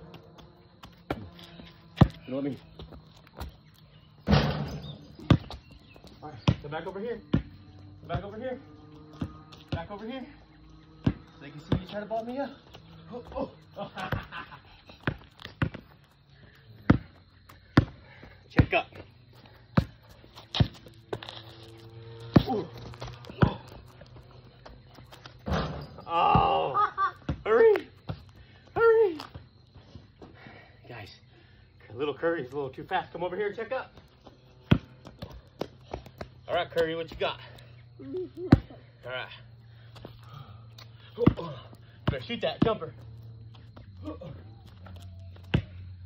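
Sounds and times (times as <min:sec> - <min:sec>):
basketball bouncing on concrete: 0:00.0 - 0:03.7, 0:04.3 - 0:08.3, 0:09.1 - 0:10.1, 0:10.8 - 0:13.4, 0:14.0 - 0:16.2, 0:16.8 - 0:19.1, 0:19.7 - 0:21.4, 0:22.1 - 0:26.6, 0:27.2 - 0:28.9, 0:33.9 - 0:36.4, 0:38.4 - 0:38.8, 0:41.1 - 0:44.0, 0:45.3 - 0:45.9
shoe scuffs on concrete: 0:19.8 - 0:24.0.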